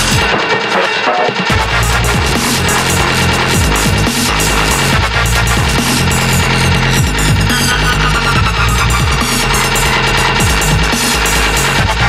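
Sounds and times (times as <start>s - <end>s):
electronic dance music: 0.0s - 12.0s
falling bass sweeps: 1.5s - 12.0s.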